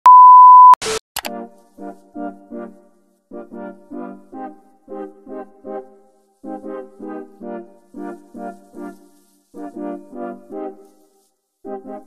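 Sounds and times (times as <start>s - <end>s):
test tone bleep: 0.0s - 0.8s
clicks: 0.8s - 1.4s
music: 1.3s - 12.0s.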